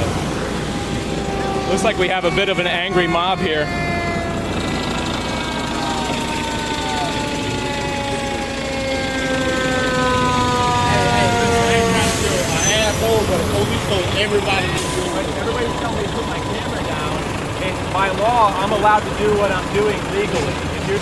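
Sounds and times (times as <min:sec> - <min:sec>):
fire engine siren winding down: 0:00.0 - 0:21.0
faint voices: 0:00.6 - 0:08.6, 0:10.7 - 0:21.0.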